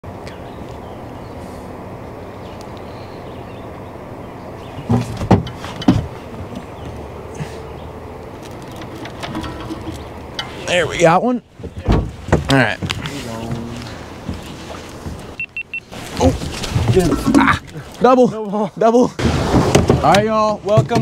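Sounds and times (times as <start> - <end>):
water noise: 0.0 - 20.2
knocks and thumps on boat: 4.8 - 7.0, 11.6 - 15.4, 16.2 - 17.6, 19.2 - 21.0.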